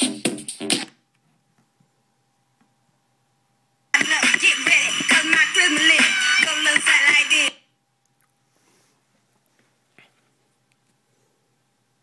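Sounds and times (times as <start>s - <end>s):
electronic music from speaker: 0.0s - 1.0s, 4.0s - 7.6s
faint steady hum: 0.9s - 12.0s.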